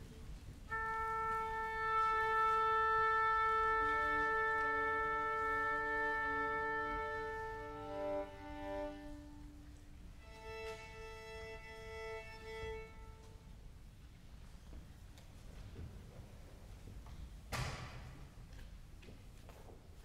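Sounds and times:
long held note: 0.7s - 10.8s
string instruments tuning: 0.7s - 13.4s.

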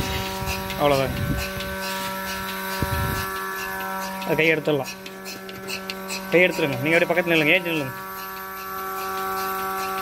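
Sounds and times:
vacuum pump humming: 0.0s - 10.0s.

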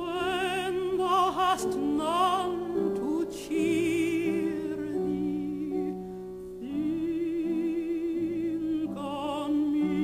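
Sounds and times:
woman singing with vibrato: 0.0s - 6.0s, 6.6s - 10.0s
piano accompaniment: 0.0s - 10.0s.

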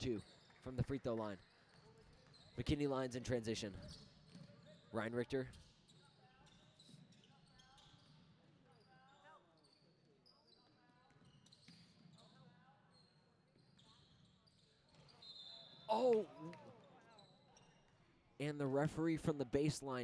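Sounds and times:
sneakers squeaking on court: 3.7s - 4.9s.

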